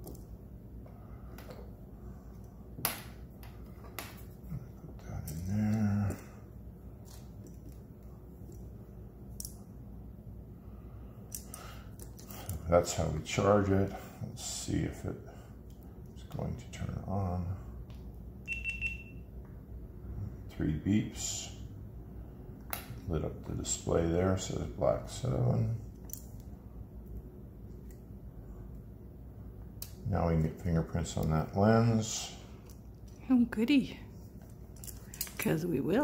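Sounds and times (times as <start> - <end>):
man humming: 4.9 - 6.4
high-pitched electronic beeps: 18.5 - 19.2.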